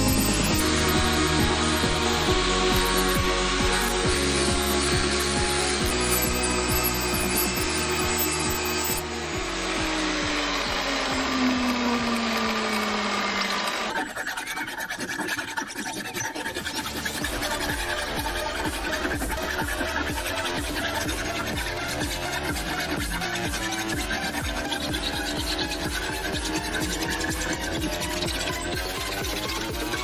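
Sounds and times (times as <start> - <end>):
background music: 0.0 - 13.9, 16.4 - 30.0
file rasping on steel: 0.0 - 30.0.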